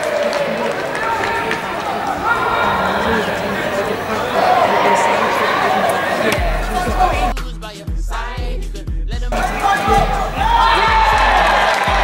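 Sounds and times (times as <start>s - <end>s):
background noise of play: 0.0s - 7.3s
players shouting: 0.0s - 7.3s, 9.3s - 12.0s.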